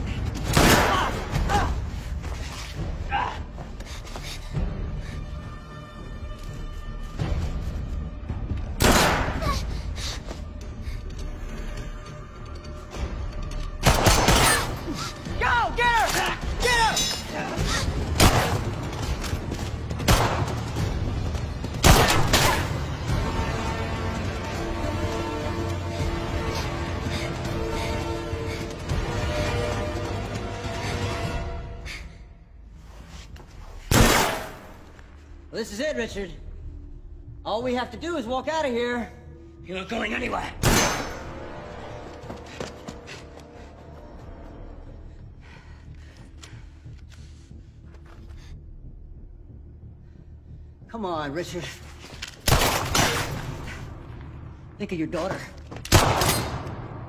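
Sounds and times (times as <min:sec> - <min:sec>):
tense film score: 0:00.0 - 0:57.0.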